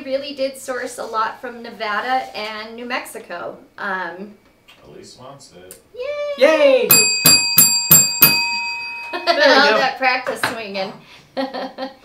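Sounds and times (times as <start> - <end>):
desk service bell ringing: 6.9 - 9.9.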